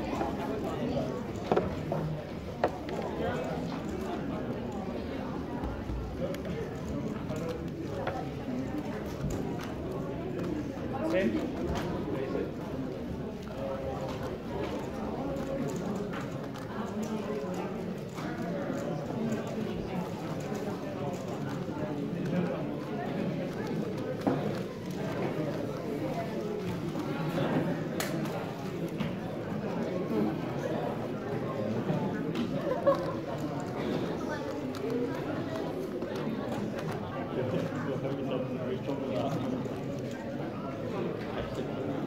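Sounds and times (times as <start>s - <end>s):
crowd talking in large hall: 0.0s - 42.0s.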